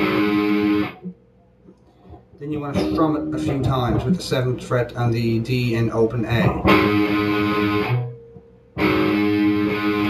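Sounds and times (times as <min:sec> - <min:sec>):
electric guitar strumming a chord: 0:00.0 - 0:01.0, 0:02.7 - 0:04.2, 0:06.6 - 0:10.0.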